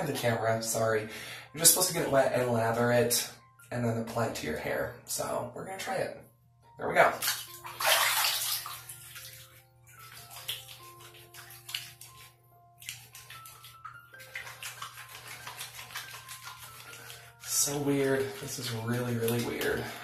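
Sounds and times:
quiet background music: 0.0s - 20.0s
water splashing: 7.2s - 20.0s
wet hands rubbing soap bar: 8.2s - 20.0s.

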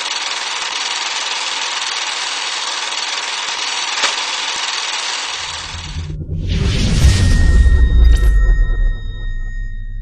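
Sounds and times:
high sonar-like ringing tones: 5.4s - 10.0s
sharp hit: 5.4s - 10.0s
deep low boom: 5.6s - 10.0s.

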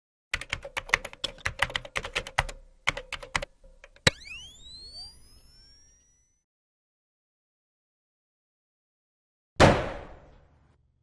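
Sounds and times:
keyboard typing clicks: 0.4s - 4.1s
rising glide tones: 4.1s - 6.4s.

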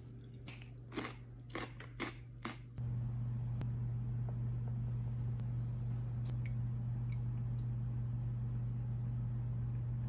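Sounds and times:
low hum: 2.6s - 10.0s.

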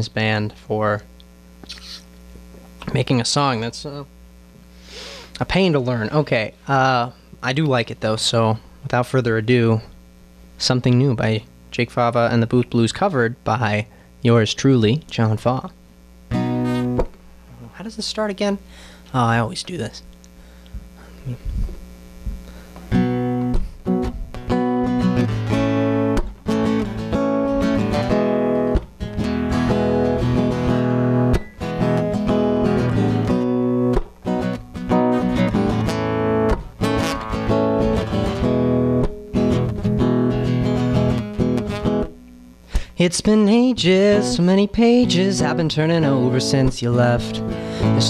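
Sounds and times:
acoustic guitar strummed chords: 16.3s - 17.3s, 22.5s - 48.0s.

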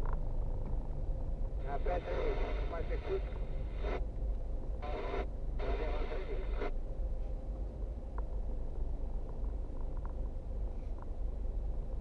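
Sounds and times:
car engine and tyres rumbling: 0.0s - 2.4s, 6.8s - 12.0s.

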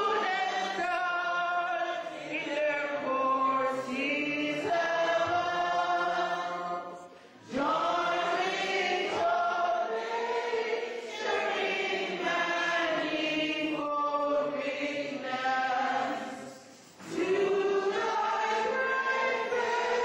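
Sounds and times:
congregation singing: 0.0s - 20.0s.

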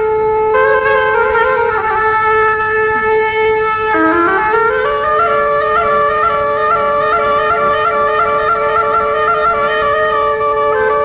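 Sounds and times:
held drone note: 0.0s - 11.0s
wind instrument melody: 0.0s - 11.0s.

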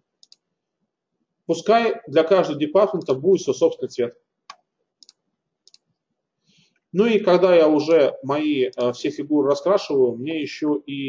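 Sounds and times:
computer mouse clicks: 0.2s - 0.5s, 4.5s - 6.0s.

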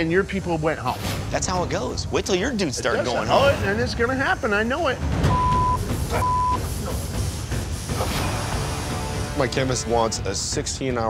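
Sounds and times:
censor bleep: 5.3s - 6.6s.

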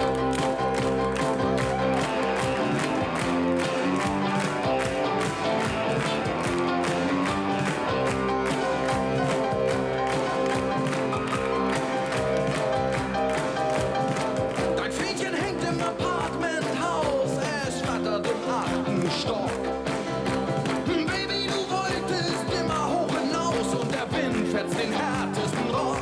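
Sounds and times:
rock band playing live: 0.0s - 26.0s.

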